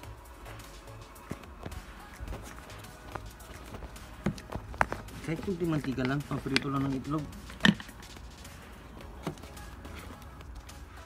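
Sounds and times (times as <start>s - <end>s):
footsteps knocking: 1.2s - 8.1s
phone being handled: 3.6s - 8.2s, 9.0s - 10.6s.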